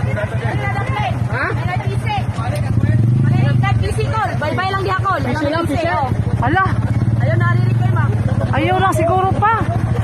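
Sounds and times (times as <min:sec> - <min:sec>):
motorcycle engine idling: 0:00.0 - 0:10.0
people's voices: 0:00.0 - 0:10.0.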